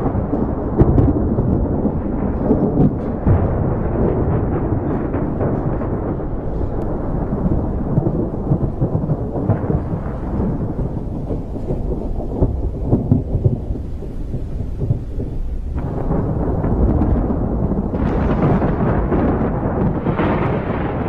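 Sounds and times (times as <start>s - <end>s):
rolling thunder: 0.0s - 21.0s.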